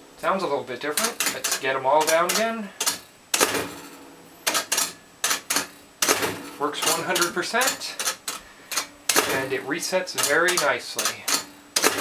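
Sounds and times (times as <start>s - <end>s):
pinball drop targets clicking: 0.9s - 12.0s.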